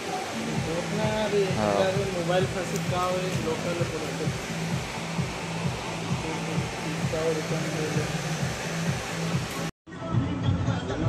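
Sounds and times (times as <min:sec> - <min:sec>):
loud rushing air noise: 0:00.0 - 0:09.7
faint music: 0:00.0 - 0:11.0.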